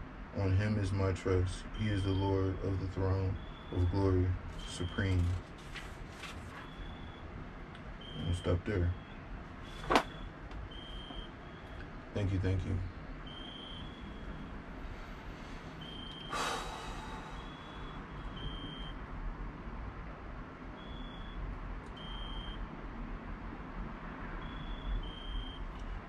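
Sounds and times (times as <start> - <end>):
background hum and hiss: 0.0 - 26.0
breathy rush of noise: 14.6 - 18.0.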